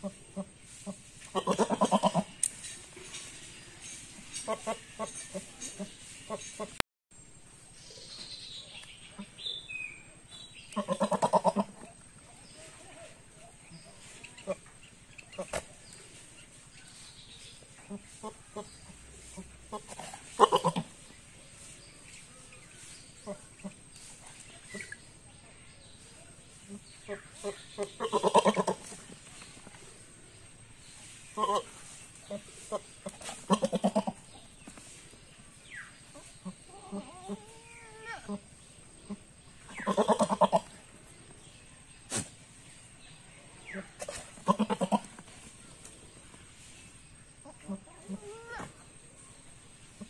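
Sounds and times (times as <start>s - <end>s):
goat bleating: 1.3s - 2.3s, 10.7s - 11.8s, 20.4s - 20.9s, 28.0s - 28.8s, 33.5s - 34.2s, 44.4s - 45.1s.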